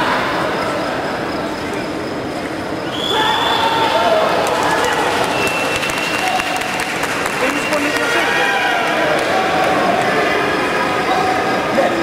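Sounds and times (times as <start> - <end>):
crowd calling out: 2.8 - 12.0
crowd clapping: 4.2 - 10.9.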